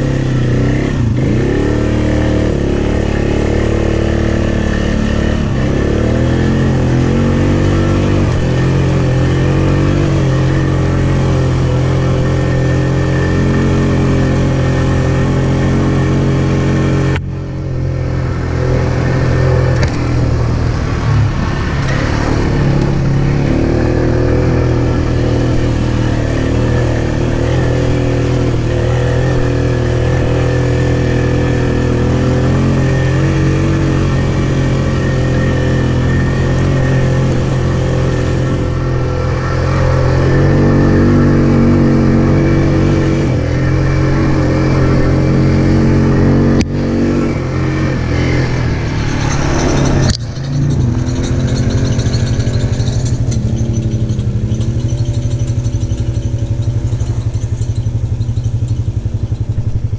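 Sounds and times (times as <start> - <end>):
atv engine revving: 0.0 - 59.9.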